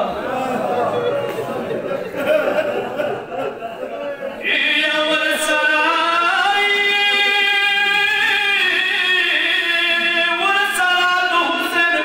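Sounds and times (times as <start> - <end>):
man chanting: 4.4 - 12.0.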